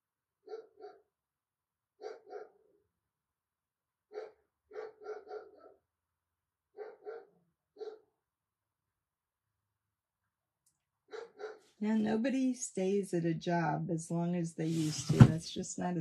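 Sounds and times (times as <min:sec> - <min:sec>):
dog barking: 0:00.4 - 0:01.1, 0:02.0 - 0:02.7, 0:04.1 - 0:05.8, 0:06.8 - 0:08.1, 0:11.1 - 0:11.7.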